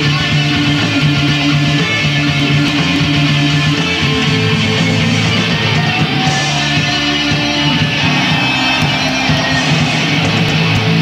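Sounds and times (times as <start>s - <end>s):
electric guitar: 0.0s - 11.0s
rock band playing live: 0.0s - 11.0s.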